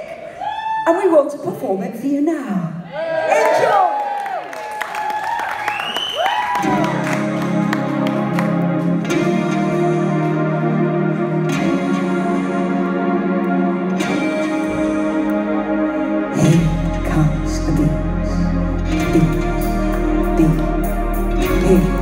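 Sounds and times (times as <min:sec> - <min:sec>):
high whoops: 0:00.0 - 0:00.9, 0:02.9 - 0:07.2
live band echoing chords: 0:06.5 - 0:22.0.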